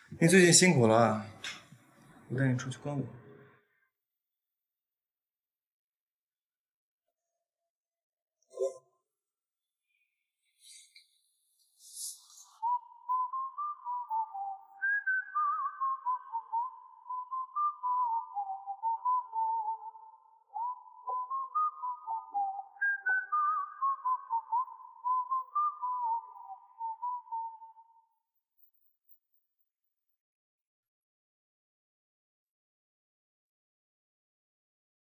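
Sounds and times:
whistled tune: 0:11.9 - 0:28.9.

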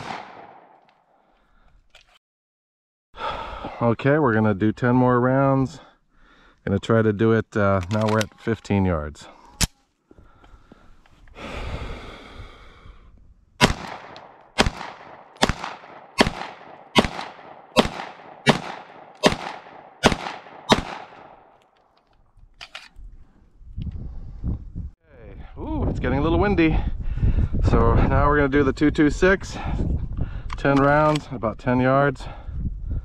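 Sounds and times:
pistol shots: 0:00.0 - 0:00.8, 0:13.6 - 0:21.6.

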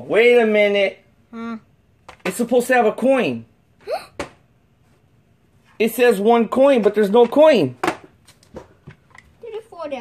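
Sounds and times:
man talking: 0:05.8 - 0:07.8.

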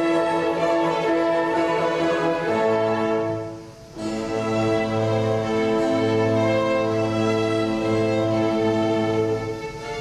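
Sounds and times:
orchestra playing symphony: 0:00.0 - 0:10.0.

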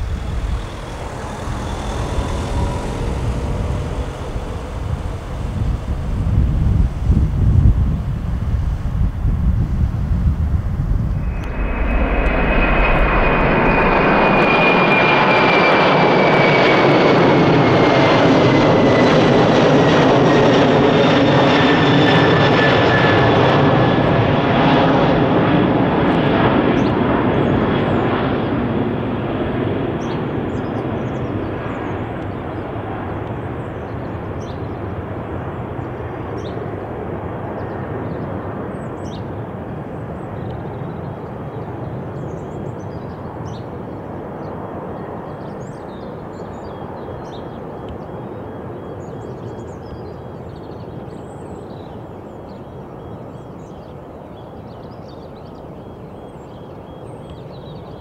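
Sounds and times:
wind noise on microphone: 0:00.0 - 0:15.6
jet engine roar and whine: 0:00.0 - 0:58.0.

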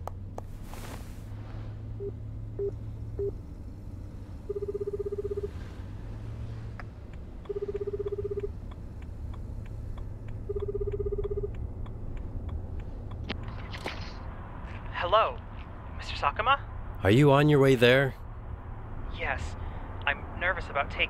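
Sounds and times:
telephone ringback tone: 0:04.5 - 0:05.6, 0:07.5 - 0:08.5, 0:10.5 - 0:11.5.

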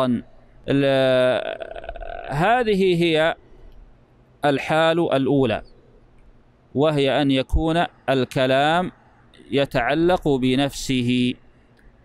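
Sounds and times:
man's hesitation sound: 0:00.7 - 0:03.2.

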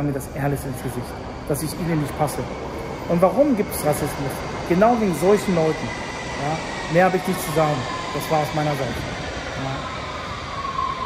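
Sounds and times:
high whine: 0:00.0 - 0:11.0
underground train rumble: 0:00.0 - 0:11.0.

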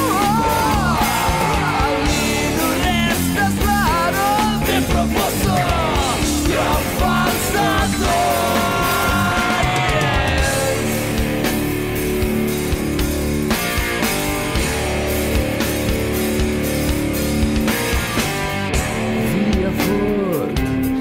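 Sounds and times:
drum beat: 0:00.0 - 0:21.0
rock guitar: 0:00.0 - 0:21.0.

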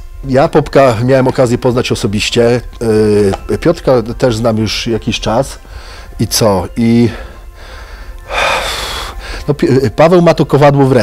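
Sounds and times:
man sharply breathing in: 0:05.6 - 0:06.2, 0:07.1 - 0:09.5.

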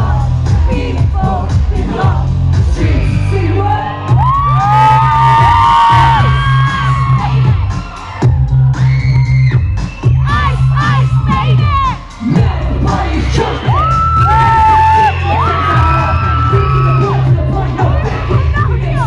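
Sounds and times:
live pop music with heavy bass: 0:00.0 - 0:19.0
crowd screaming and cheering: 0:02.8 - 0:19.0.

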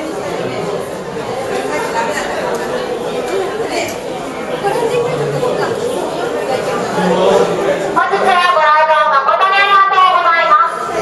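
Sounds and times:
crowd chatter indoors: 0:00.0 - 0:11.0.

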